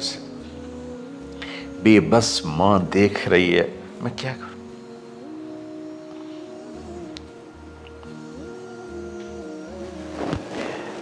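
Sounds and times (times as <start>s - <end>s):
soft drone-like chords: 0.0s - 11.0s.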